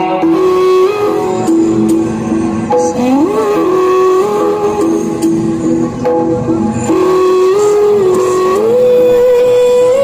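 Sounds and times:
recorded film song: 0.0 - 10.0.

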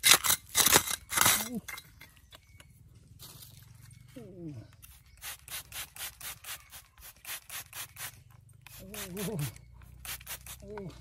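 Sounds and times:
spray bottle hissing bursts: 5.2 - 10.7.

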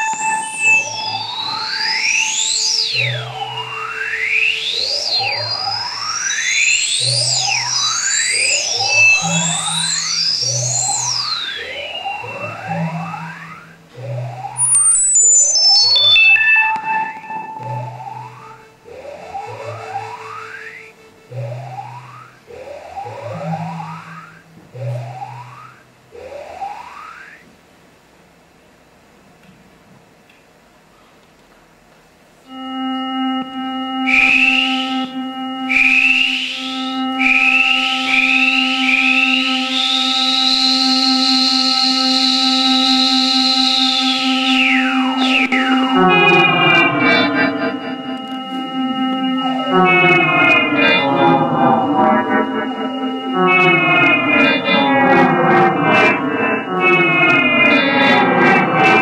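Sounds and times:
electronic synthesizer music: 0.0 - 27.3, 32.4 - 59.0.

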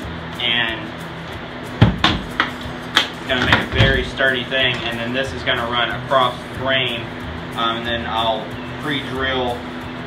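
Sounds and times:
wooden knocks: 1.8 - 2.6.

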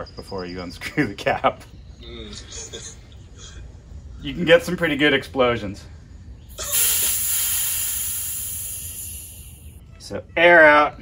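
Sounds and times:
air hissing from valve: 6.5 - 9.8.

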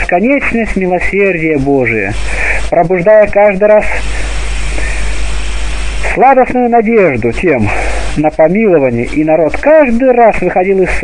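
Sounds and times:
loud steady hiss: 0.0 - 11.0
low hum: 1.7 - 9.2.

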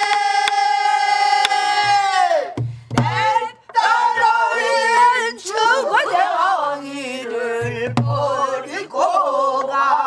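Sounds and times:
singers holding a long note: 0.0 - 10.0.

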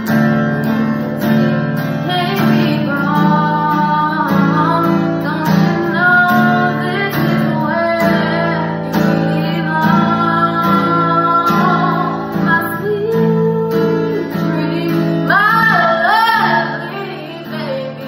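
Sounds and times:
acoustic guitar strumming: 0.0 - 18.0
woman singing soul ballad: 1.8 - 18.0.

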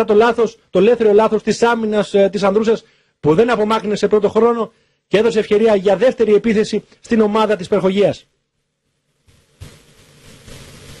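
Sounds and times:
steady outdoor hiss: 5.1 - 11.0.

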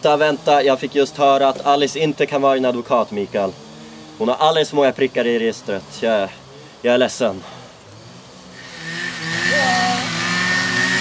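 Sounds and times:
garden power tool engine running: 0.0 - 11.0.

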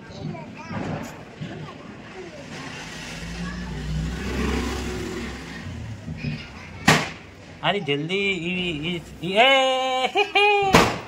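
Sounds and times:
vehicle engine passing by: 2.3 - 7.4.

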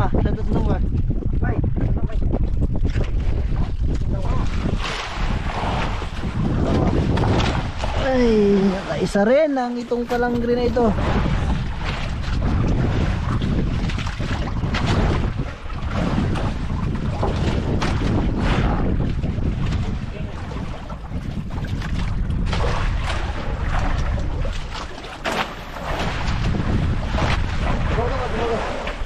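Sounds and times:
sea washing around boat: 0.0 - 29.0
wind buffeting microphone: 0.0 - 29.0.

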